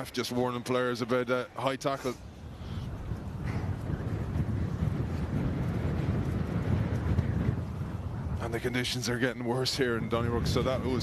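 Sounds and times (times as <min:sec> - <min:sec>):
wind buffeting microphone: 0:02.2 - 0:11.0.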